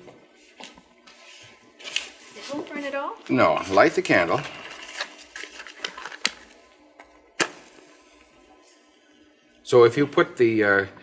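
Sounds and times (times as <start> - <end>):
matches clicking and scraping: 4.6 - 6.6
match strike: 7.4 - 8.3.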